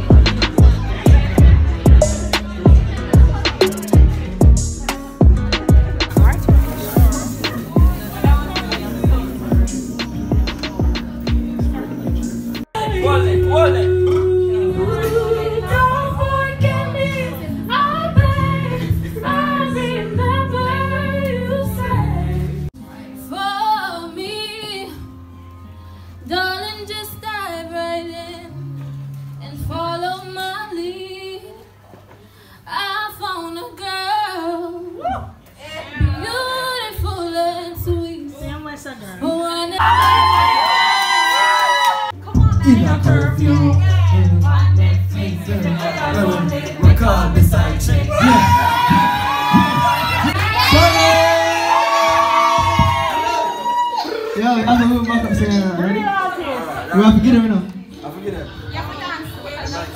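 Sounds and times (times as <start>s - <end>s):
crowd shouting and cheering: 0.0s - 15.8s, 39.8s - 56.8s
men singing through microphones: 12.8s - 17.0s, 42.6s - 49.8s
woman singing into microphone: 12.8s - 25.2s, 26.2s - 28.7s, 29.4s - 31.7s, 32.7s - 35.4s, 36.0s - 40.0s, 42.2s - 50.2s.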